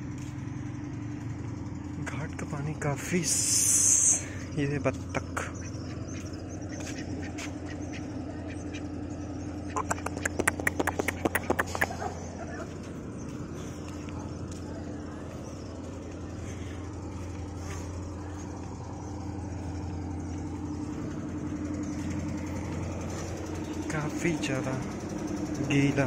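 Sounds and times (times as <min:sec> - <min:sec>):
motorboat engine hum: 0:00.0 - 0:26.0
duck quacking: 0:09.7 - 0:12.6.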